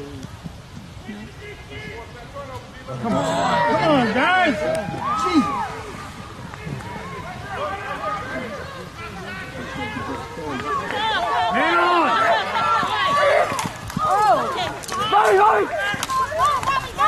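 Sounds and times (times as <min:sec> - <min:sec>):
players and spectators shouting: 0:01.0 - 0:17.0.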